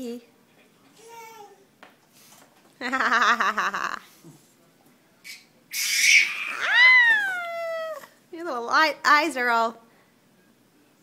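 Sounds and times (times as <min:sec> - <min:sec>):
toddler squealing: 0:05.7 - 0:07.6.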